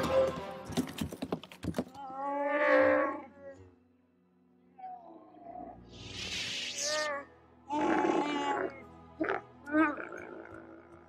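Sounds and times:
orchestral score: 0.0s - 1.1s.

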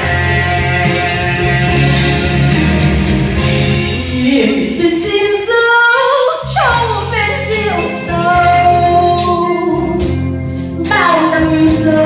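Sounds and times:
slow ballad backing track: 0.0s - 5.8s, 6.4s - 12.0s.

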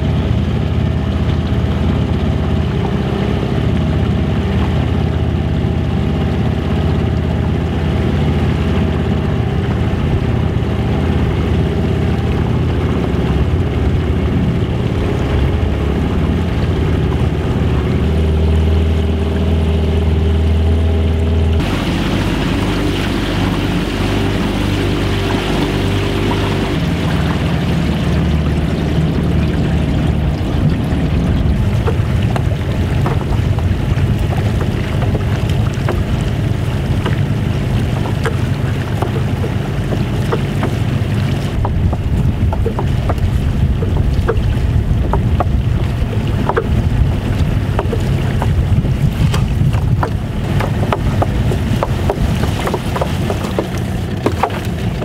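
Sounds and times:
boat motor running: 0.0s - 55.0s
net floats clicking and knocking: 31.8s - 55.0s.

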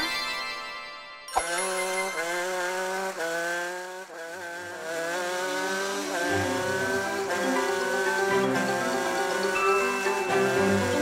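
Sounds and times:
cartoon race car engine: 1.3s - 11.0s.

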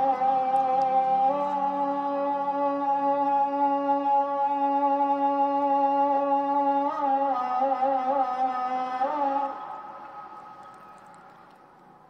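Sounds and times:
call to prayer over loudspeaker: 0.0s - 11.3s.

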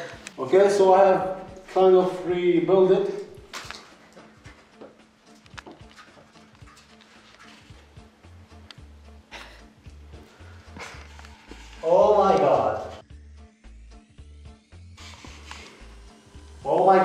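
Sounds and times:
background music with pulsing bass: 0.0s - 17.0s
steady low hum: 7.9s - 17.0s.

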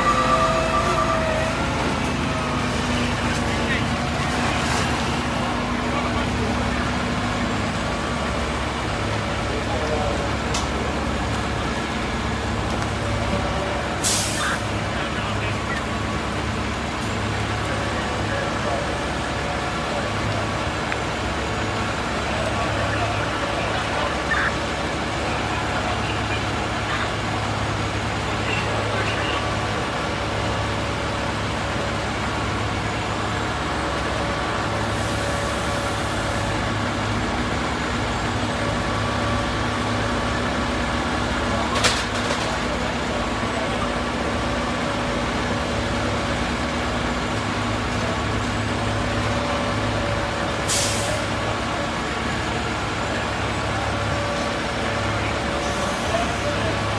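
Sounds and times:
diesel engines running: 0.0s - 56.9s.

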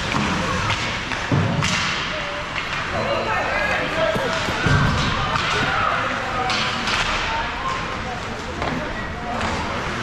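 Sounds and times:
faint voices: 2.0s - 10.0s.

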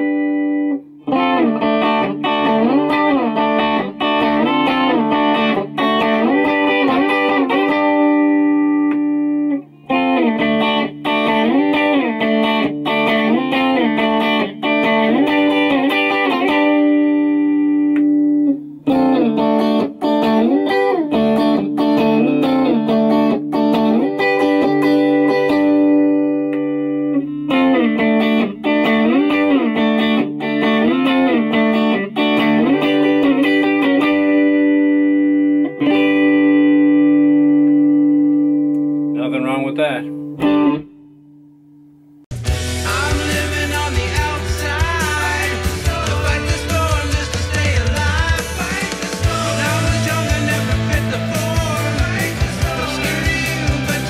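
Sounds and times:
electric guitar melody with vibrato: 0.0s - 54.0s.

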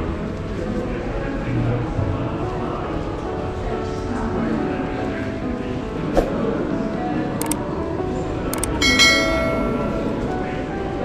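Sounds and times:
quick clicks: 8.5s - 8.8s
bright bell chime: 8.6s - 10.3s.

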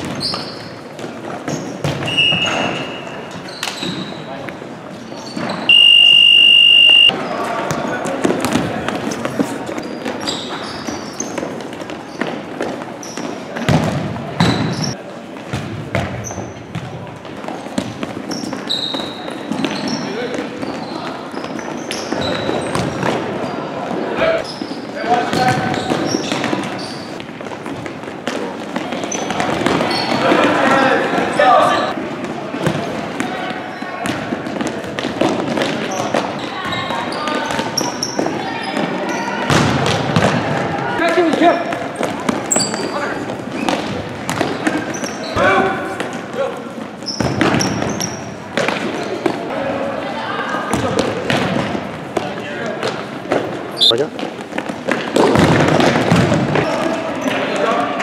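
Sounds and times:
referee's whistle blast: 5.7s - 7.2s.

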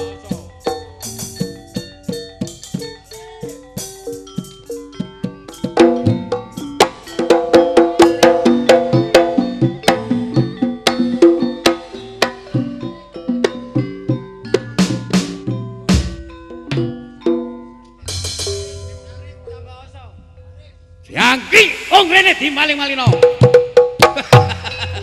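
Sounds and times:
drum beats: 0.0s - 20.4s, 21.1s - 25.0s
struck pitched percussion: 0.0s - 25.0s.

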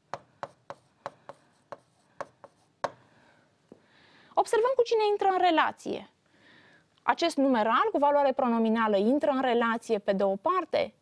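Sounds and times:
stylus tapping on tablet screen: 0.1s - 3.0s.

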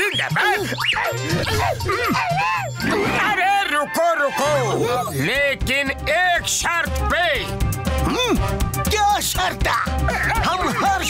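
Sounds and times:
music with repeating bass beat: 0.0s - 3.4s, 4.4s - 11.0s
rising and falling yelping calls: 0.0s - 5.2s.

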